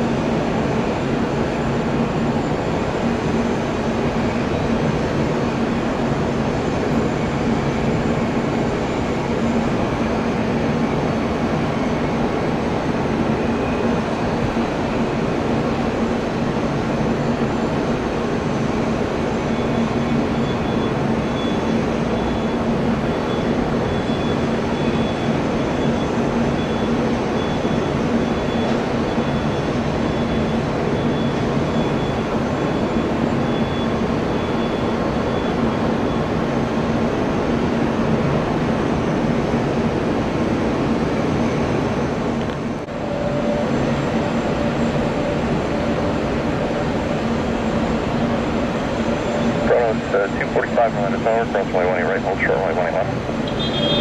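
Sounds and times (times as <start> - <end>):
faint high whine: 0.0 - 54.0
jet airliner engines running: 0.0 - 54.0.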